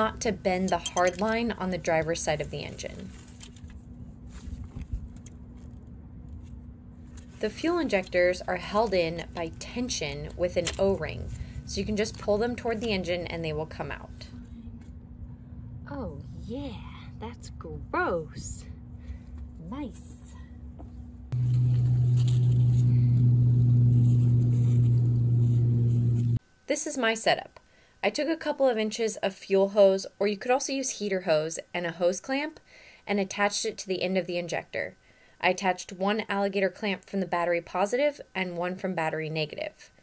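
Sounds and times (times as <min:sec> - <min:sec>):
steady low rumble: 0:00.0 - 0:26.4
faint hum: 0:00.0 - 0:40.0
machine low drone: 0:08.5 - 0:26.4.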